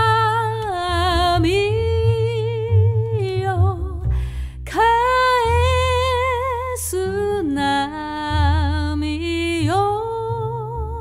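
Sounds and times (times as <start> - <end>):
plucked double bass: 0.0 - 11.0
woman singing slow song: 0.0 - 11.0.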